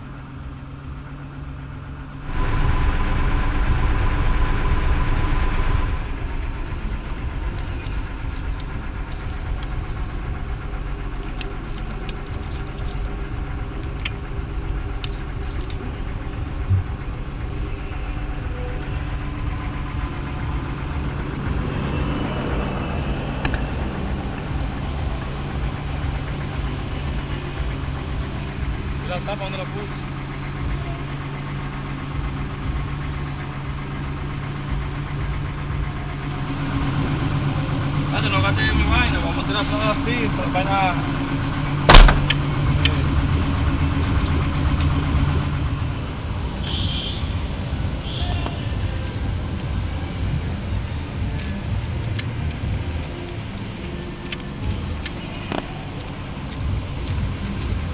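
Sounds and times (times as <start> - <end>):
pickup truck engine starting and idling: 0.0 - 57.9
short thump: 41.9 - 42.4.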